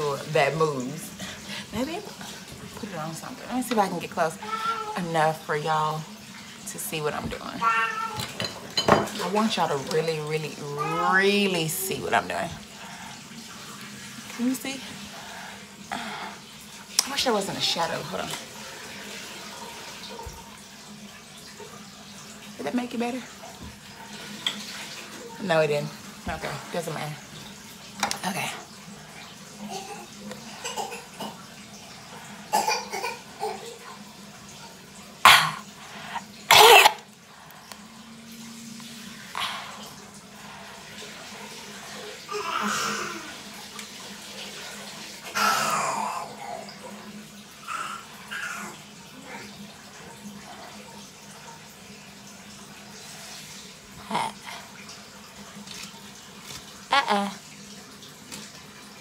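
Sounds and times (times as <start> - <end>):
water running into bathtub: 0.0 - 59.0.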